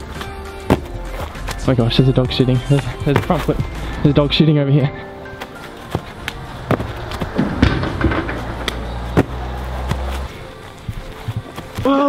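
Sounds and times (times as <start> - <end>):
music with deep bass note: 0.0 - 4.4, 5.5 - 11.8
sharp knocks and thumps: 5.4 - 11.6.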